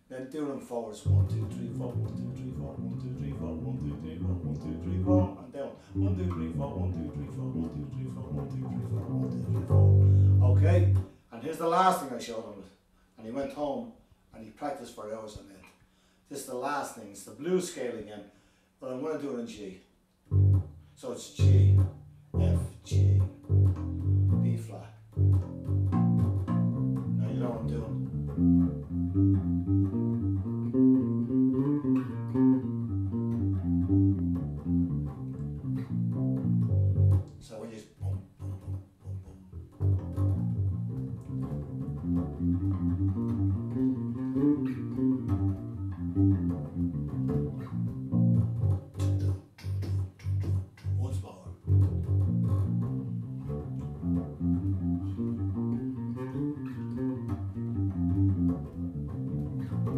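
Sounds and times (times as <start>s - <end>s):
electric bass guitar notes: 1.0s - 11.1s, 20.3s - 59.9s.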